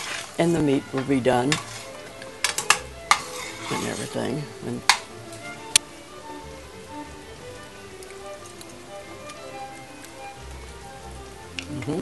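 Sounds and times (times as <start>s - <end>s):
sauce simmering with popping bubbles: 0.0s - 3.7s, 4.8s - 12.0s
faint clicks: 6.8s - 11.9s.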